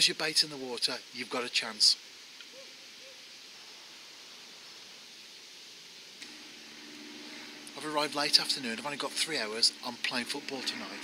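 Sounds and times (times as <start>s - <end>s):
faint outdoor hiss: 0.0s - 11.0s
low steady hum: 0.0s - 11.0s.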